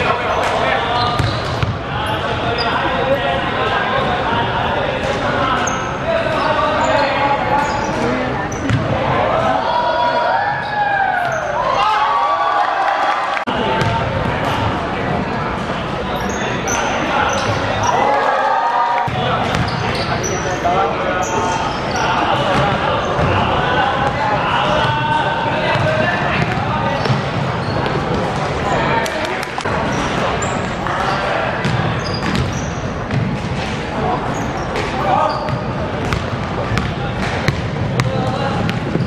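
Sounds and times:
sneakers squeaking: 0.0 - 9.2, 10.4 - 11.8, 13.6 - 18.3, 19.0 - 39.0.

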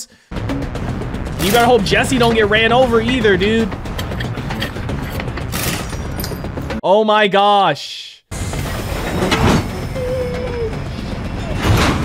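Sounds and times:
metal hose coupling clicking: 3.9 - 6.5.

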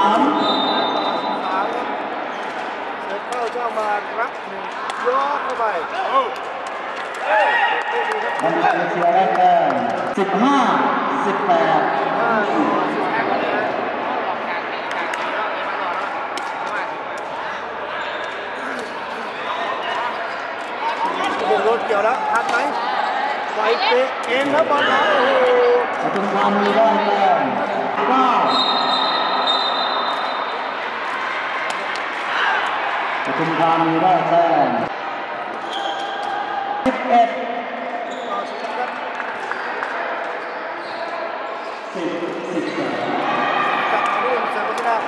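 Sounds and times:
spectators chatting: 0.0 - 45.0
crowd shouting: 12.0 - 34.3, 43.0 - 45.0.

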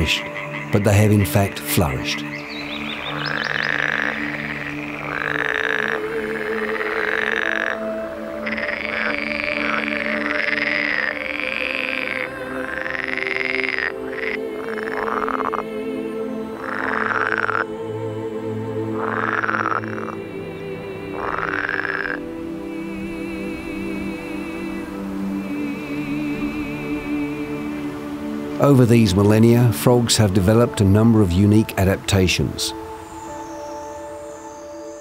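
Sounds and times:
background music with low tones: 0.0 - 35.0
frogs croaking: 0.0 - 35.0.

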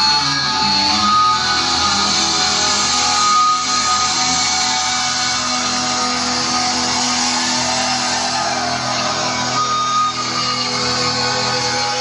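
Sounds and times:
electric guitars playing loud: 0.0 - 12.0
live hard rock band: 0.0 - 12.0.

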